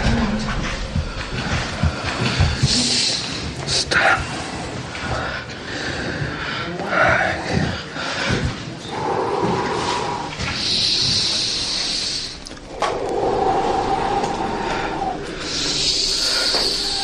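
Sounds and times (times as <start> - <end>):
man breathing heavily: 0.0 - 17.0.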